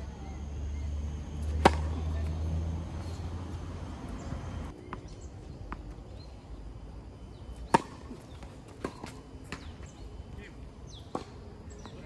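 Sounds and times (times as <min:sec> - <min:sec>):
tennis racket striking ball: 0:01.4 - 0:02.4.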